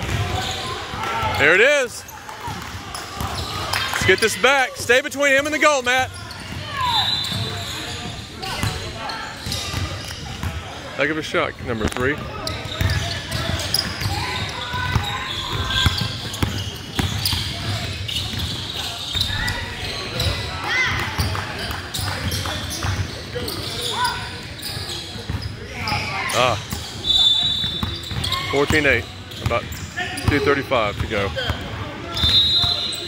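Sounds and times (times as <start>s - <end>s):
voices in a large gym: 0.0s - 33.0s.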